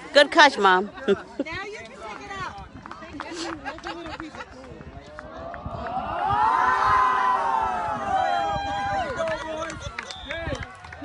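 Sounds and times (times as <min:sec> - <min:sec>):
boys cheering together: 0:05.4 - 0:10.7.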